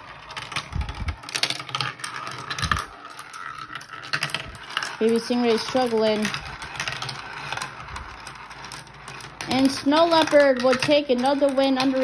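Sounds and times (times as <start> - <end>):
marbles rolling on plastic track: 0.0 - 12.0.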